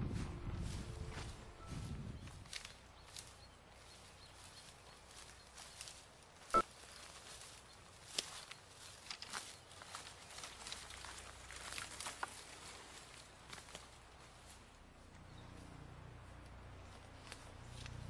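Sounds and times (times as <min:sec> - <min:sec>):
footsteps crunching dry leaves: 0:00.1 - 0:14.7, 0:16.8 - 0:18.0
twig snapping: 0:08.1 - 0:09.4.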